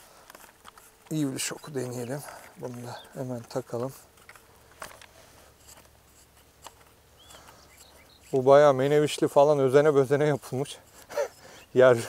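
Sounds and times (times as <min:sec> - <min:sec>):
light handling noise: 0:00.2 - 0:12.0.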